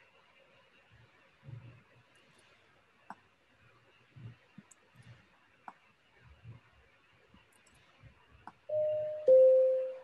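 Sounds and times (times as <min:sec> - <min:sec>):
two-note timer chime: 0:08.7 - 0:10.0.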